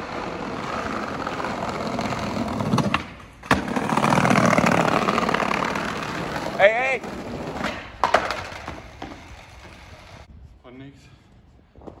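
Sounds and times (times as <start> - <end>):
skateboard wheels rolling on paving: 0.0 - 10.3.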